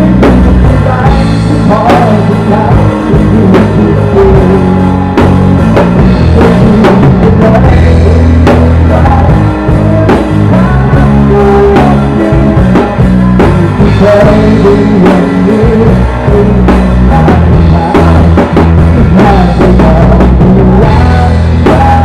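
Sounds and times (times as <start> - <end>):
bass and guitar: 0.0 - 22.0
drum kit playing: 0.0 - 22.0.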